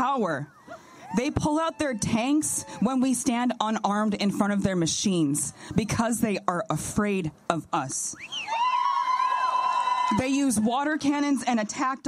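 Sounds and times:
long high whoop: 8.3s - 10.1s
crowd cheering and whooping: 8.3s - 10.7s.

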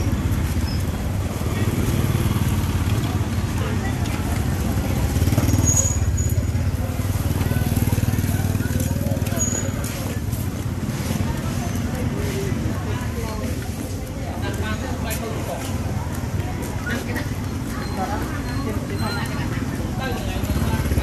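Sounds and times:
motorbikes: 0.0s - 21.0s
people's voices: 0.0s - 21.0s.

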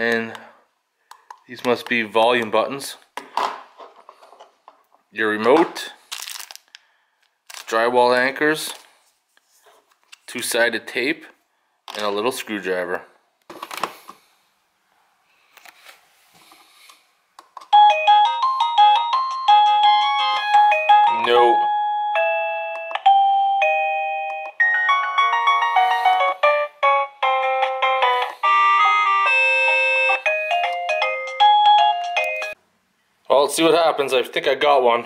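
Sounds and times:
doorbell chime melodies: 17.7s - 32.6s.

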